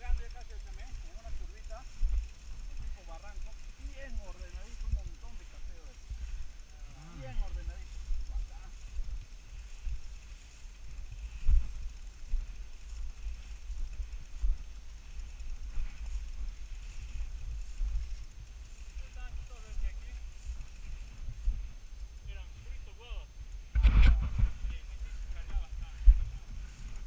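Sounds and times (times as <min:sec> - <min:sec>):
rumble and knocking on camera: 0:23.6 - 0:27.0.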